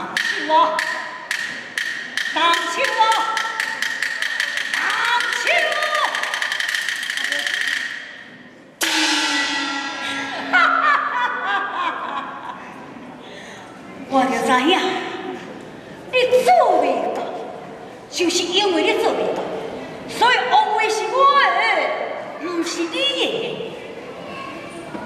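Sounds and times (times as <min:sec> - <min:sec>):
wood block strokes: 0:00.1 - 0:08.2
gong crash: 0:08.8 - 0:11.2.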